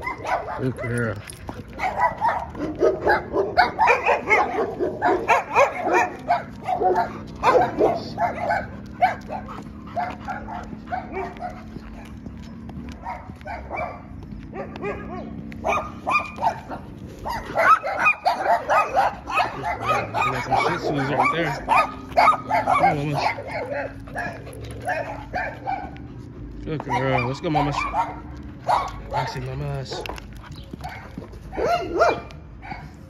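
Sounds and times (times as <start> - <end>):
dog barking and yelping: 0.0 - 33.0.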